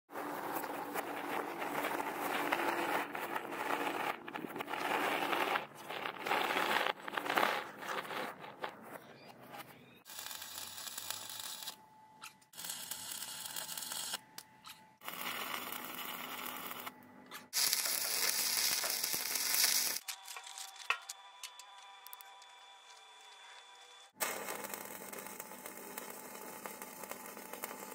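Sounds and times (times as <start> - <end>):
electric arc welding: 10.1 - 11.8, 12.5 - 14.2, 15.0 - 16.9, 17.6 - 27.9.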